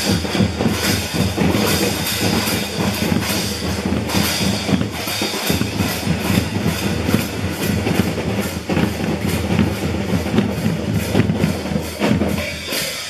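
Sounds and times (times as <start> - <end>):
marching snare and bass drums: 0.0 - 13.0.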